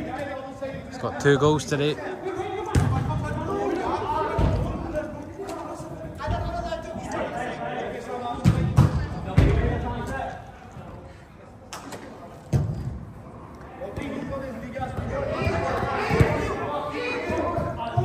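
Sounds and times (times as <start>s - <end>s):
players shouting: 14.9s - 18.0s.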